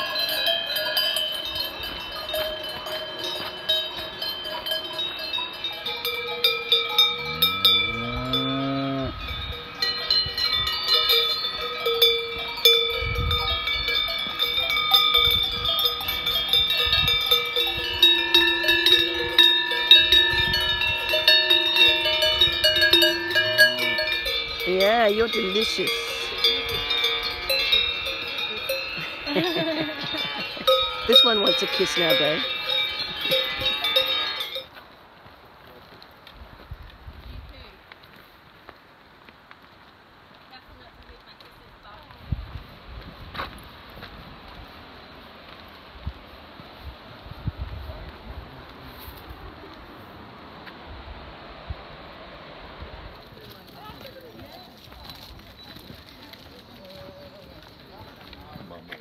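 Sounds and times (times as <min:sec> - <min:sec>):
cowbells ringing and clanking: 0:00.0 - 0:34.8
cow mooing: 0:07.1 - 0:09.2, 0:23.1 - 0:24.3
wind noise on microphone: 0:08.1 - 0:11.6, 0:12.3 - 0:23.4, 0:36.4 - 0:37.7, 0:41.8 - 0:45.0, 0:45.9 - 0:49.6, 0:50.8 - 0:53.2.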